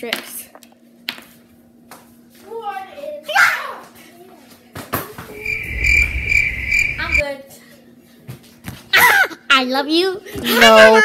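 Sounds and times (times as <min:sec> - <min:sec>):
high-pitched pulsing whine: 0:05.3 - 0:07.2
low rumble: 0:05.3 - 0:07.2.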